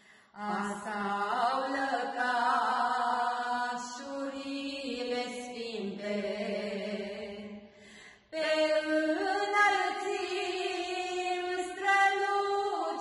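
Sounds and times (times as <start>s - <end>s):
women singing a hymn: 0.3s - 13.0s.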